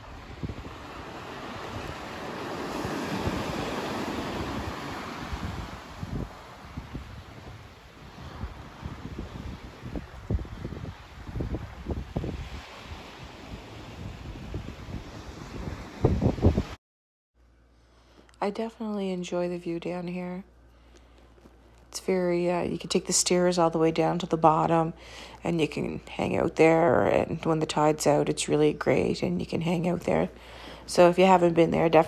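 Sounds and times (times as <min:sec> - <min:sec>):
sea waves washing onto beach: 0:00.0 - 0:16.7
wind buffeting microphone: 0:00.0 - 0:16.8.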